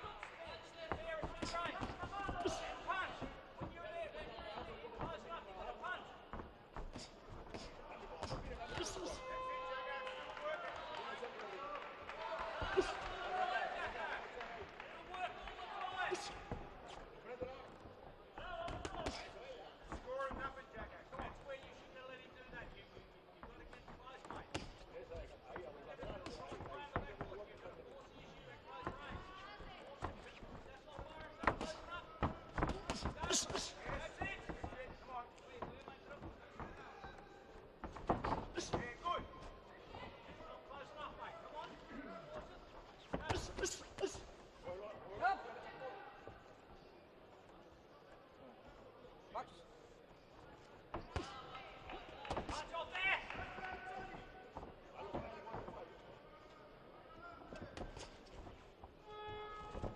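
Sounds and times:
boxers' footwork thuds on canvas: 0.8s - 9.2s, 23.4s - 27.8s, 28.8s - 40.4s, 57.5s - 58.9s
thuds of gloves and feet on canvas: 30.1s - 35.0s.

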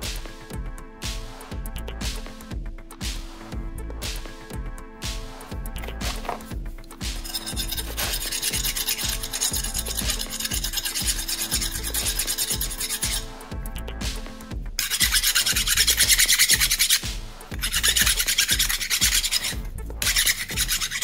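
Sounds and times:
hand file rasping on metal: 7.2s - 13.4s, 14.8s - 21.0s.

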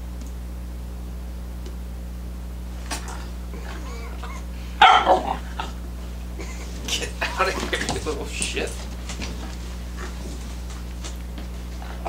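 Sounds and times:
puppy barking: 2.9s - 5.8s.

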